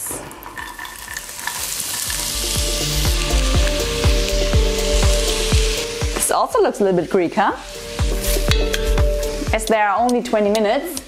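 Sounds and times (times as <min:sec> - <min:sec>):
vegetables sizzling in oil: 0:00.0 - 0:11.0
background music with thudding beat: 0:02.2 - 0:06.4, 0:07.7 - 0:11.0.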